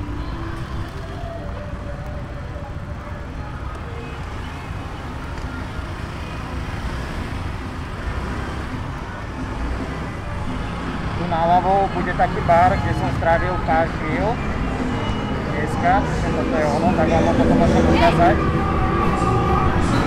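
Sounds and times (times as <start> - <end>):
motorbike and car engines: 0.0 - 20.0
road noise rumble: 0.0 - 20.0.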